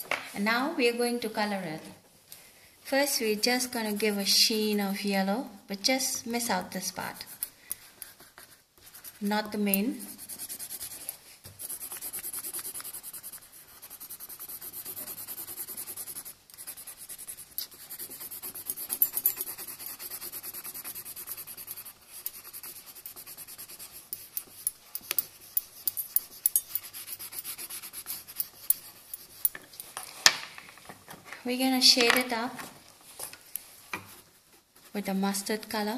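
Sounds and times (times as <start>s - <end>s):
coloured pencil shading on paper: 3.4s - 5.1s, 6.5s - 29.6s.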